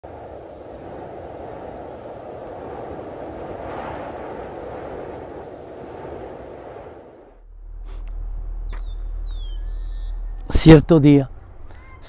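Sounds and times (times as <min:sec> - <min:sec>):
low rushing rumble: 0:00.0 - 0:10.5.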